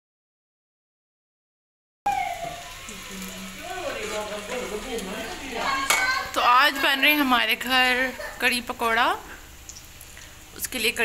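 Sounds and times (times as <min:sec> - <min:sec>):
voices talking: 0:02.1 - 0:09.2
food sizzling in hot oil: 0:02.1 - 0:11.0.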